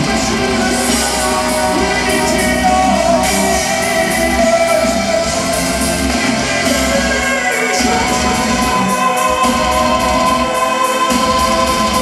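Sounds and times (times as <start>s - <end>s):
choir-like held chords: 0.0s - 12.0s
drums: 0.0s - 12.0s
electric guitars: 0.0s - 12.0s.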